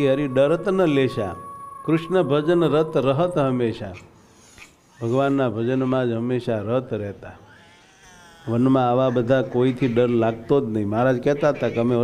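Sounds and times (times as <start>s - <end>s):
man speaking sing-song: 0.0s - 4.1s.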